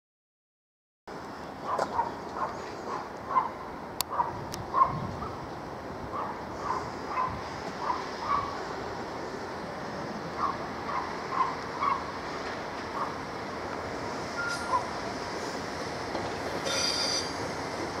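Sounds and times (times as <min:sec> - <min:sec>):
distant rail machine running: 0:01.1 - 0:18.0
dog barking: 0:01.7 - 0:05.0, 0:06.2 - 0:08.6, 0:10.4 - 0:12.1, 0:13.0 - 0:13.2.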